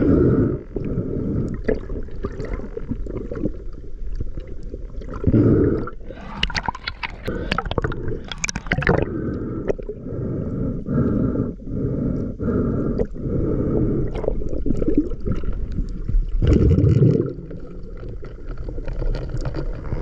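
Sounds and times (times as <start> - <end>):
underwater churning rush: 4.4 - 11.4, 12.4 - 19.8.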